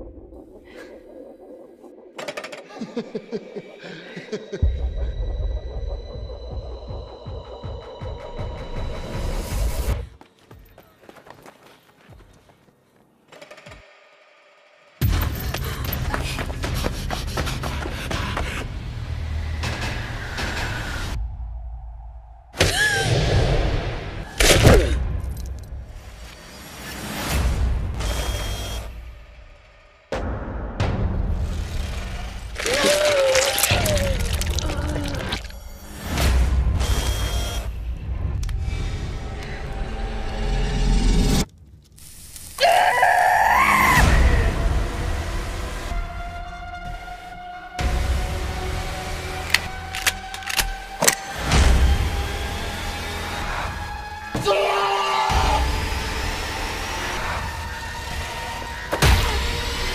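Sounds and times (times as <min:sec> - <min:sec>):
person screaming high-pitched: 0:32.6 - 0:35.4.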